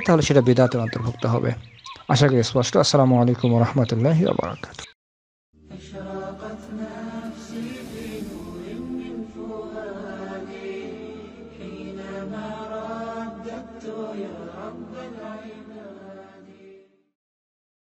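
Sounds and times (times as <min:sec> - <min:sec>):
chanted vocal singing: 0:05.6 - 0:17.1.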